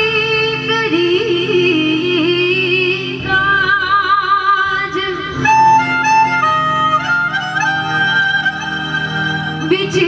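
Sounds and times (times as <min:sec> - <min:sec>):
melody instrument held notes: 0:04.8 - 0:10.0.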